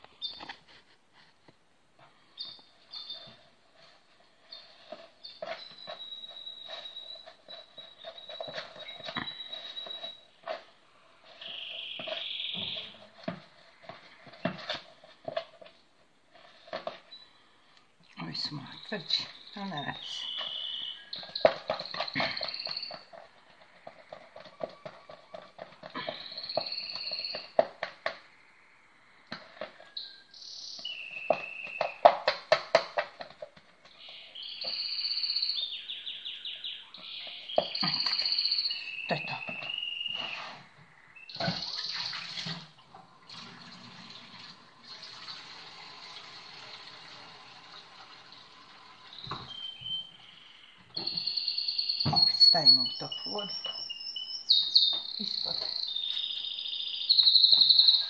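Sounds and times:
birds chirping: 2.0 - 3.5, 4.4 - 15.4, 16.6 - 43.2, 48.2 - 58.0.

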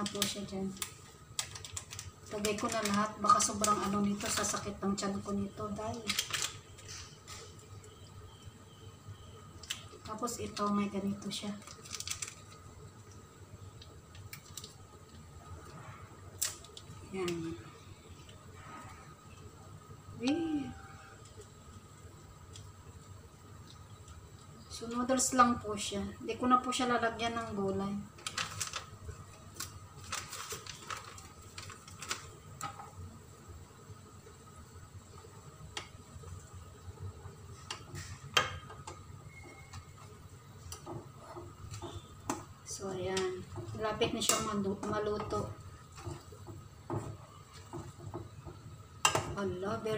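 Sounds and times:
plastic packet clicks and crinkles: 0.0 - 4.7, 5.9 - 7.1, 11.6 - 13.2, 13.8 - 14.8, 28.2 - 32.8.

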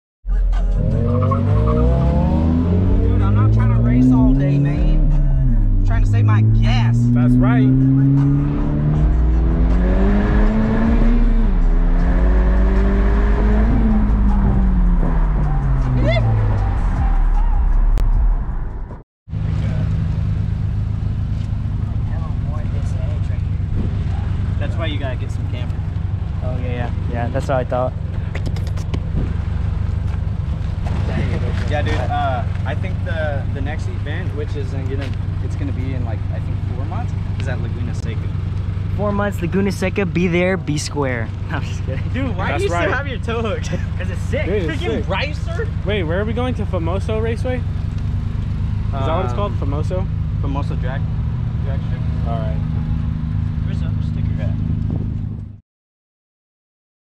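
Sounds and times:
car engine accelerating: 0.3 - 55.6
deep low hum: 0.3 - 55.6.

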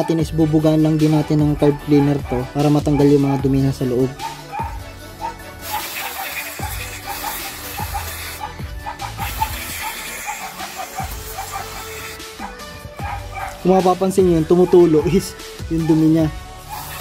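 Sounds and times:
background music with beat: 0.0 - 17.0
aerosol spray hissing: 5.6 - 12.5, 16.6 - 17.0.

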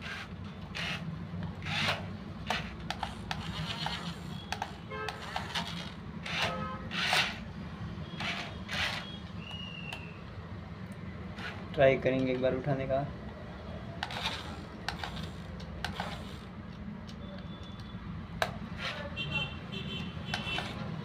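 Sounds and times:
toy electric motors humming: 0.0 - 7.4, 8.2 - 9.2, 14.0 - 16.5.

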